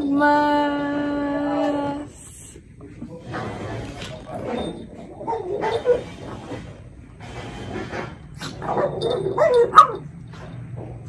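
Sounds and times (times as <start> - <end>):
small dog yipping and whining: 8.5 - 10.0.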